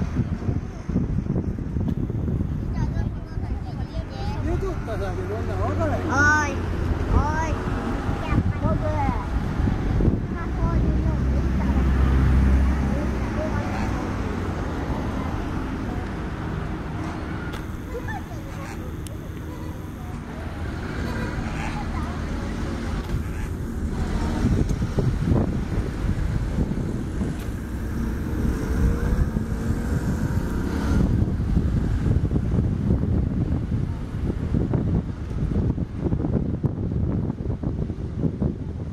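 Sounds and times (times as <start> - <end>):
people's voices in background: 0.0 - 31.2
wind rumbling on microphone: 0.0 - 38.9.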